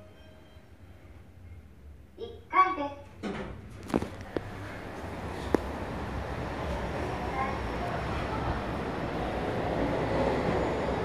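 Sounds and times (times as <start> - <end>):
rumbling background din: 3.7 - 11.0.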